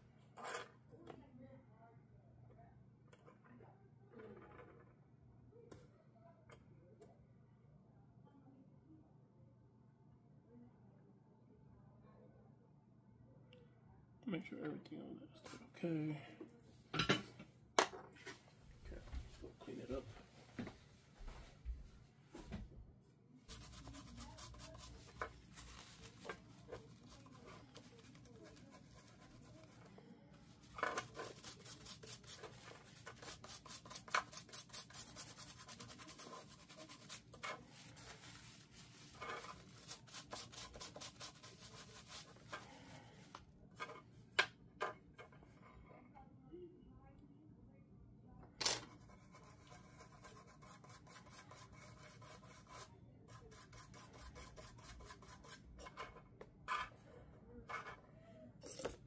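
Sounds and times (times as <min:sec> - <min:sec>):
toothbrush scrubbing circuit board: 0:23.5 - 0:29.8, 0:31.0 - 0:42.6.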